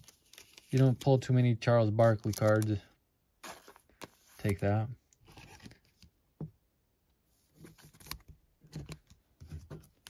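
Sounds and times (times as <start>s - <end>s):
cards and packaging rustling: 0.0s - 6.2s, 7.4s - 10.0s.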